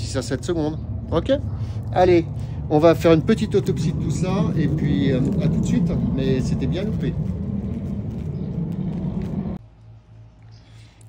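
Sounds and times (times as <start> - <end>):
faint low hum: 0.0 - 11.0
low rumbling background noise: 0.0 - 11.0.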